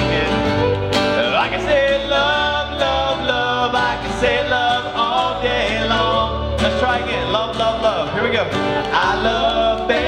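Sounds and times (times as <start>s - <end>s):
person singing into microphone: 0.0s - 8.1s, 8.8s - 10.0s
acoustic guitar: 0.0s - 10.0s.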